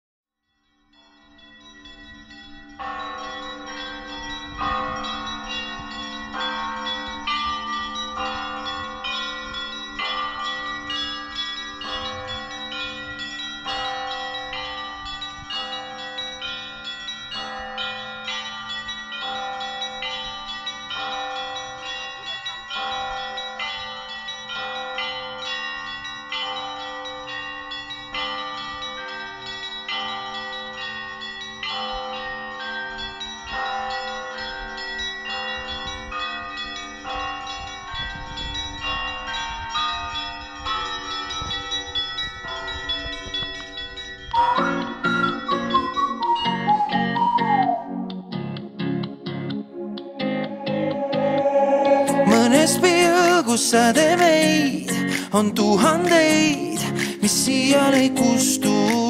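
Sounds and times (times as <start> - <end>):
church bells ringing: 0.6 - 59.0
low ringing tone: 49.7 - 54.3.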